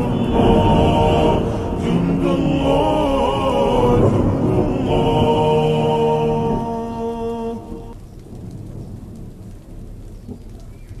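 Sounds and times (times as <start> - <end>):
held vocal chord: 0.0 - 8.0
low rolling thunder: 0.0 - 10.2
rain: 0.0 - 11.0.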